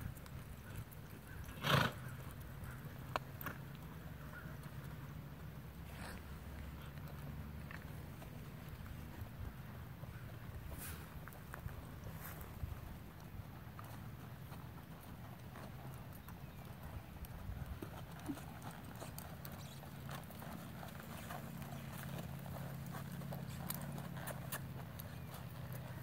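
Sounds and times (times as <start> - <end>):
horse hooves on soft dirt: 0.0 - 26.0.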